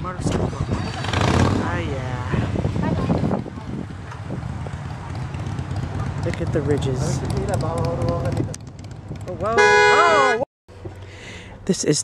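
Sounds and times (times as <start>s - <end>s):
loud car horn: 9.5s - 10.4s.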